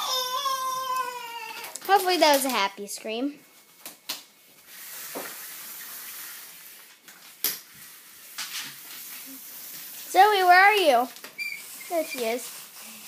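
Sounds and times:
toy stroller rolling on wooden floor: 10.0 - 13.0.

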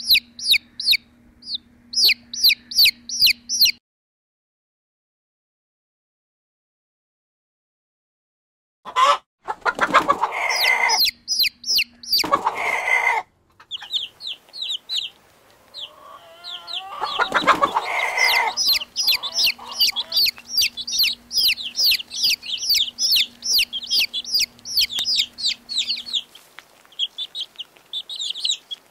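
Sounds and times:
chickens calling harshly: 0.0 - 3.8, 8.9 - 28.9
chicks peeping: 0.0 - 3.8, 8.9 - 28.9.

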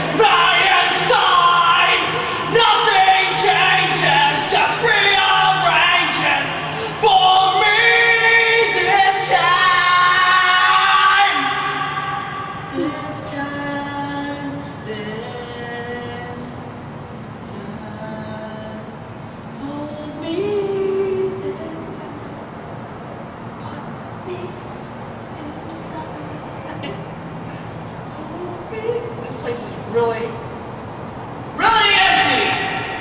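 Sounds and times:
man singing with echo: 0.0 - 22.5.

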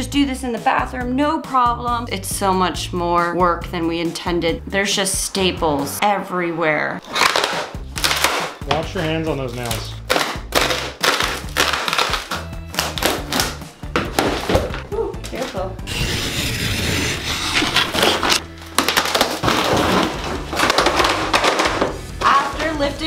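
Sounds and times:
background music: 0.0 - 23.0
wood cracks and splintering: 7.0 - 15.5, 17.6 - 22.3
flooring being torn up: 7.0 - 22.8.

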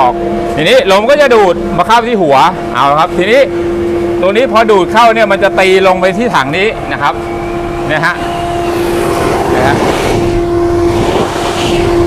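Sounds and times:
dust collector motor hum: 0.0 - 12.0
air rushing under suction: 8.1 - 12.0.

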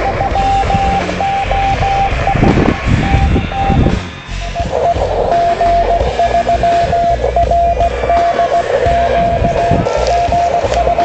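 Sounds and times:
morse code tone: 0.0 - 11.0
radio receiver hiss: 0.0 - 11.0.

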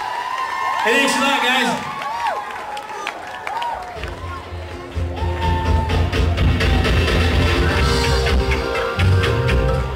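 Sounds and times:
rock band playing live: 4.6 - 9.9.

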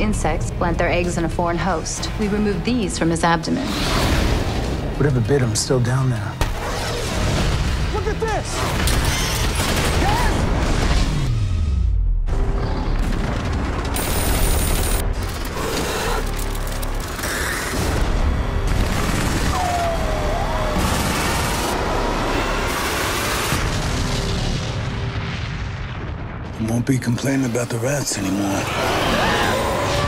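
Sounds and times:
dramatic trailer music: 0.0 - 30.0.

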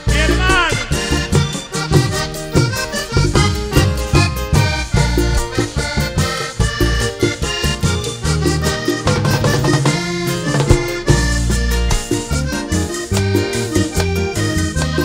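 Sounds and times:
band playing: 0.0 - 15.0
bass line: 0.0 - 15.0
button accordion melody: 0.0 - 15.0
conga drums: 0.0 - 15.0.

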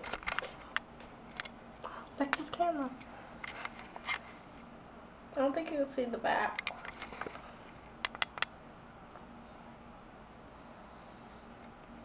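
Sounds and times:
faint steady hum: 0.0 - 12.0
sharp clicks: 8.0 - 8.6.

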